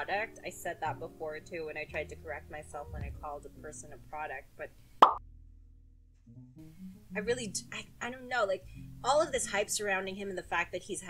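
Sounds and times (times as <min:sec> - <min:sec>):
low steady hum: 0:00.0 - 0:04.7
sharp pop: 0:05.0 - 0:05.2.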